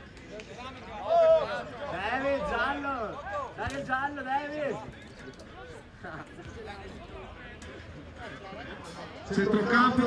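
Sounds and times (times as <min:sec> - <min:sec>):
faint background voices: 0:04.5 - 0:10.0.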